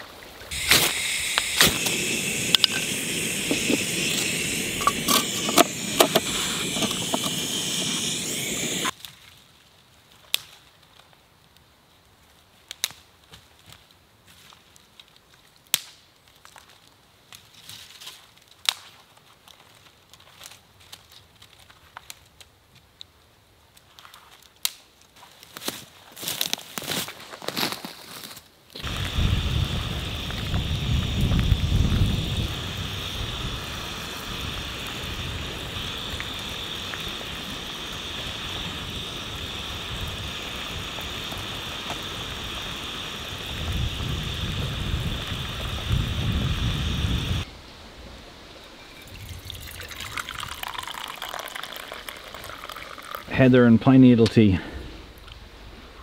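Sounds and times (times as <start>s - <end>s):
tea pouring into a mug: 0.5s - 8.9s, 48.8s - 53.5s
gas stove burner hissing: 0.5s - 9.0s, 28.8s - 47.5s.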